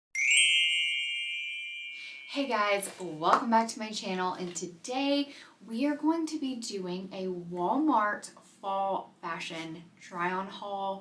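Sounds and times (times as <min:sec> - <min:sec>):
bright chime ding: 0:00.2 - 0:02.5.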